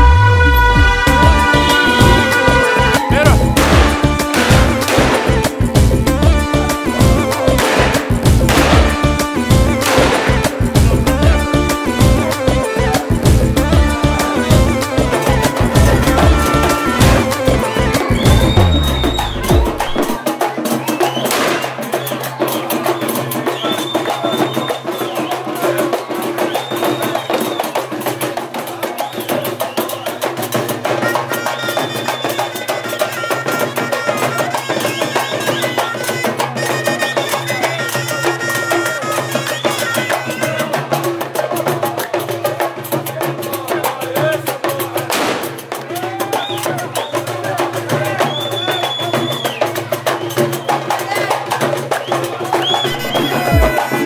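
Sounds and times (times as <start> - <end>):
high wind instrument melody: 0.0 - 20.3, 30.8 - 41.0, 52.4 - 54.0
crowd voices: 0.0 - 54.0
hand drums beating: 1.2 - 6.4, 14.5 - 38.5, 40.1 - 54.0.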